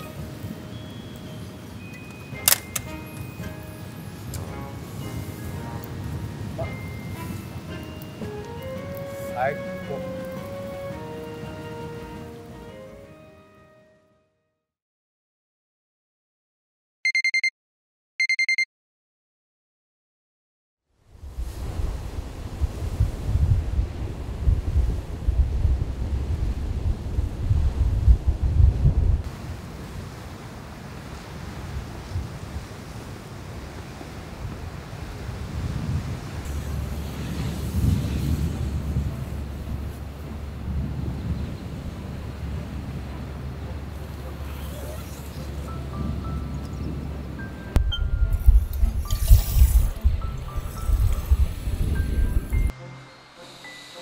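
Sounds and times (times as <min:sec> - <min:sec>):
quiet background music: 0:00.0 - 0:14.0, 0:43.2 - 0:54.0
gusty wind on microphone: 0:21.0 - 0:52.7.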